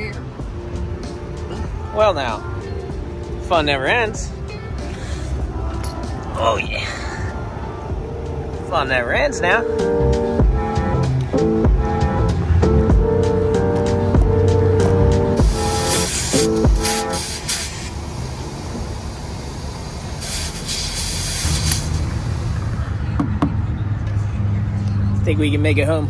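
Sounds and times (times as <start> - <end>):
background music: 0.0 - 17.5
air hose hissing: 15.4 - 22.7.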